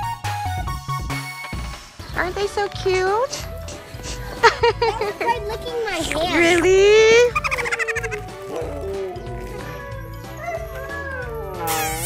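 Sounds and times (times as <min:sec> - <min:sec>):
background music with steady beat: 0:00.0 - 0:12.0
sled dog whining: 0:06.2 - 0:12.0.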